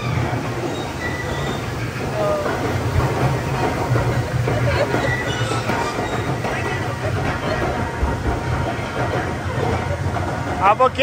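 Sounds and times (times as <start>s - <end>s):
conveyor lift mechanical rumble: 0.0s - 11.0s.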